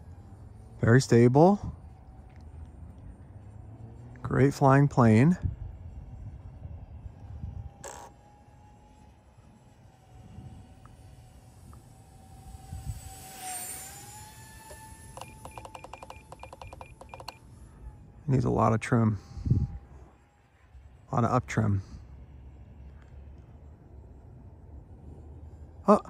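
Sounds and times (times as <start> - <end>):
low wind rumble: 0.0 - 15.8, 16.6 - 26.0
electric ducted fans whining: 0.0 - 26.0
short electronic beeps: 15.1 - 17.6.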